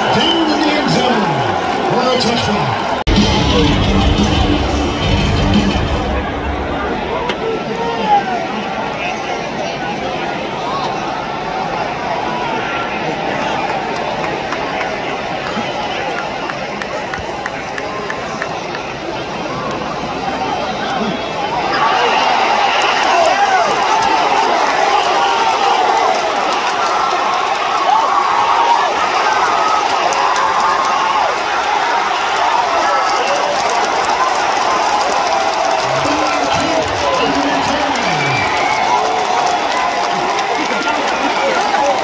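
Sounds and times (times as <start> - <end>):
stadium crowd cheering and yelling: 0.0 - 42.0.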